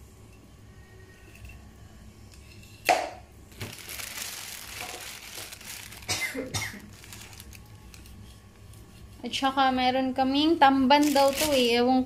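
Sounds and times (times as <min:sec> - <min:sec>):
plastic bag crinkling: 0:03.5 - 0:08.2, 0:10.9 - 0:11.9.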